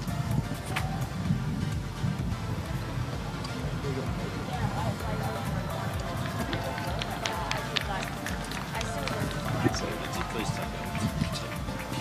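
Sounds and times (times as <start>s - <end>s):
background music: 0.0s - 12.0s
distant voices: 0.0s - 12.0s
steady low rumble: 0.0s - 12.0s.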